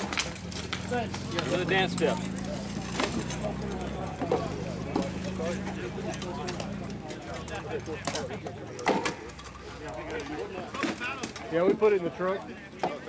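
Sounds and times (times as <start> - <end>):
indistinct voices talking: 0.0 - 13.0.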